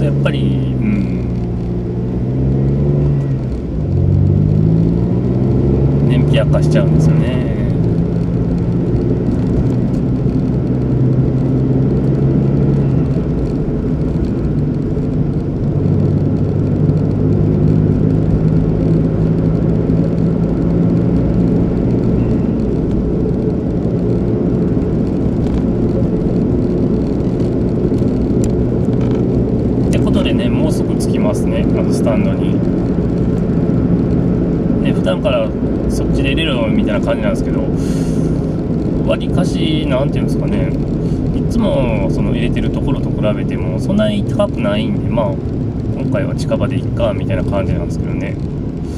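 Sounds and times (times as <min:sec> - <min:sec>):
car engine: 0:00.0 - 0:48.9
road noise: 0:00.0 - 0:48.9.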